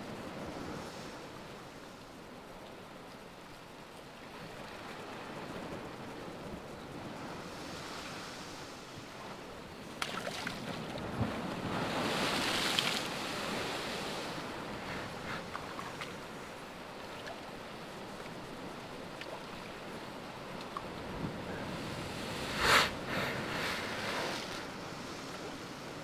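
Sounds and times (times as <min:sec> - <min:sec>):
ocean surf on rocky shore: 0:04.2 - 0:26.0
wave crashing against rocks: 0:20.9 - 0:25.4.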